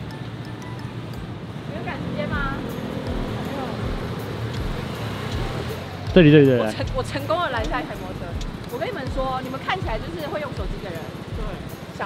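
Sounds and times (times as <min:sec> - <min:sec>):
cars passing: 0:00.0 - 0:12.0
motor scooters passing: 0:00.0 - 0:12.0.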